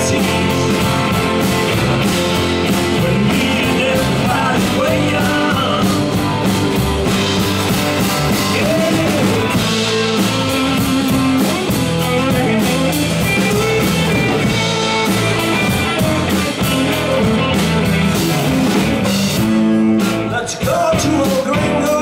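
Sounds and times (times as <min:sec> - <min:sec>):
acoustic-electric guitar: 0:00.0 - 0:22.0
bass guitar: 0:00.0 - 0:22.0
drum kit beat: 0:00.0 - 0:22.0
electric guitars: 0:00.0 - 0:22.0.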